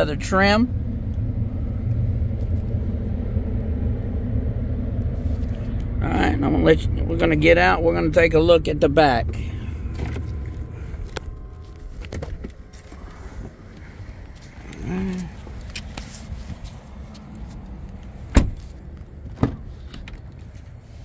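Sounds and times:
camera handling rumble: 9.8s - 17.6s
car door shutting thud: 18.3s - 19.7s.

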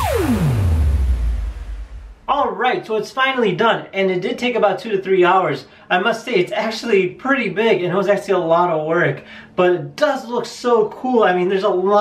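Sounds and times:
electronic music: 0.0s - 2.4s
falling synth sweep: 0.0s - 2.4s
low rumble: 0.0s - 2.4s.

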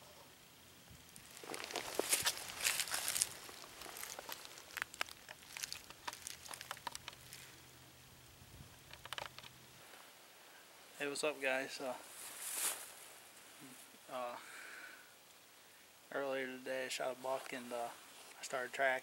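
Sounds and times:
footsteps crunching dry leaves: 1.2s - 7.6s, 12.0s - 13.0s.

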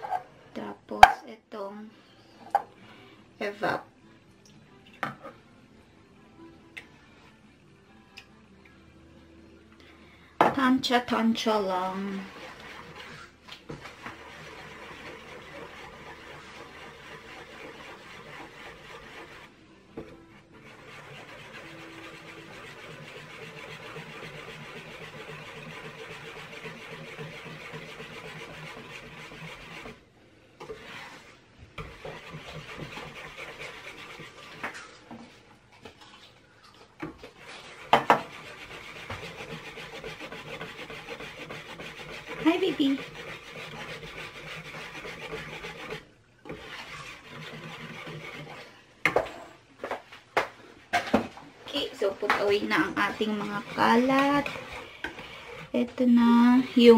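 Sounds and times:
whisk scraping metal bowl: 10.6s - 30.0s, 30.6s - 36.4s, 37.0s - 49.4s, 51.7s - 56.9s.

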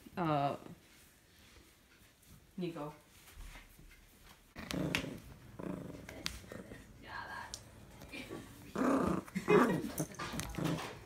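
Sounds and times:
small dog growling: 4.6s - 7.0s, 8.3s - 11.0s.

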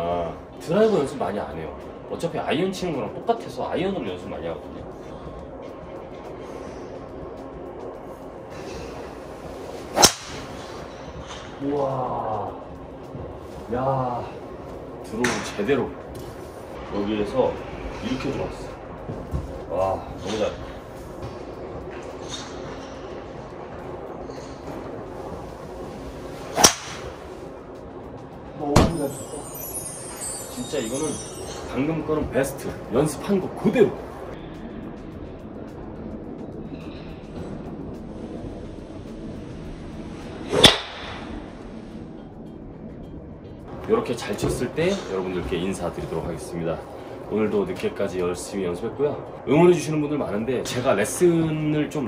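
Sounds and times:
steady background hum: 0.0s - 52.0s
golf club striking ball: 10.0s - 10.6s, 26.6s - 27.1s, 40.5s - 41.2s.

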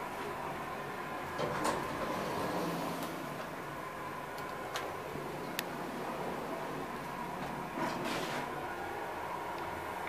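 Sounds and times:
elevator doors sliding open: 0.0s - 10.0s
elevator hum: 0.0s - 10.0s.

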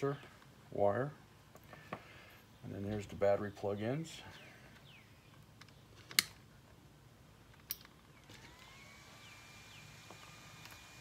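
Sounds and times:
faint electric whine: 8.0s - 11.0s.

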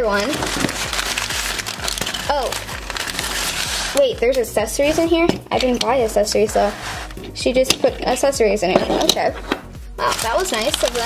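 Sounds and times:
paper packaging crinkling: 0.0s - 7.4s, 10.0s - 11.0s.

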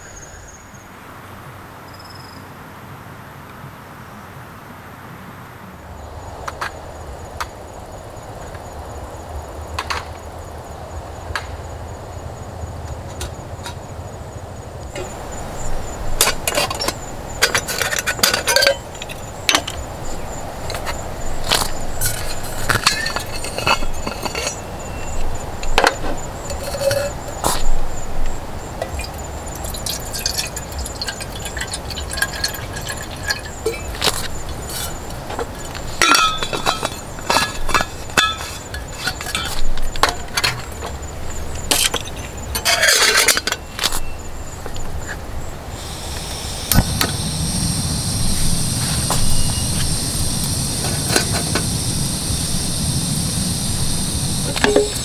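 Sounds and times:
metal cookware clinking: 16.2s - 19.8s, 22.0s - 27.7s, 28.8s - 35.0s, 36.0s - 40.7s, 41.7s - 44.0s, 54.6s - 55.0s
metal flask clinks and knocks: 16.2s - 19.8s, 54.5s - 55.0s
thin high tone: 46.2s - 55.0s.

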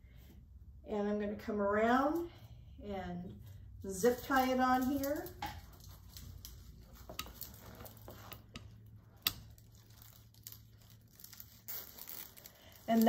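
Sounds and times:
netting rustling and crinkling: 4.0s - 13.0s.

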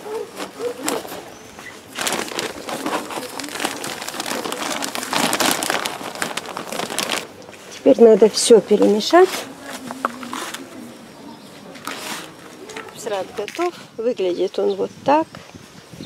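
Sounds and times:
plastic bag crinkling: 0.3s - 10.8s, 11.7s - 13.8s.

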